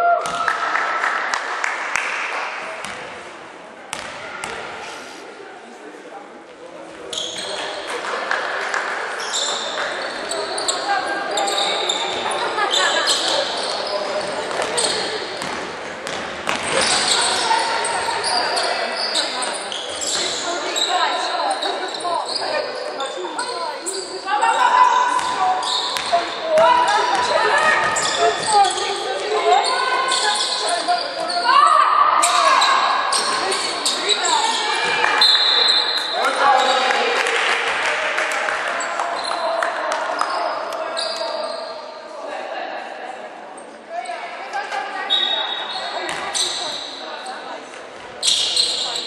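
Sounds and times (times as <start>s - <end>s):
sneakers squeaking on floor: 7.0s - 8.0s, 9.1s - 37.0s, 40.0s - 42.0s, 43.6s - 49.0s
basketball bouncing on wooden court: 15.4s - 17.0s, 26.0s - 26.2s.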